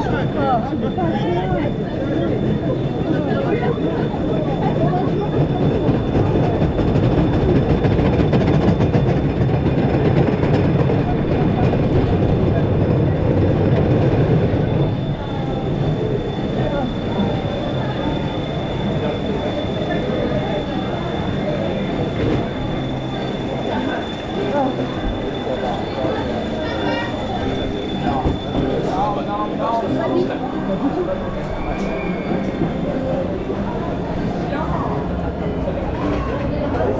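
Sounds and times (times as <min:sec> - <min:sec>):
roller coaster wheels rumbling on track: 0:00.0 - 0:36.9.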